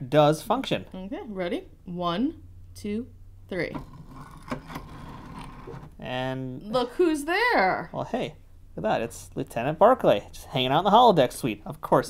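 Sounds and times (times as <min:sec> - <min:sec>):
plastic scraping on plastic: 0:03.8 - 0:06.0.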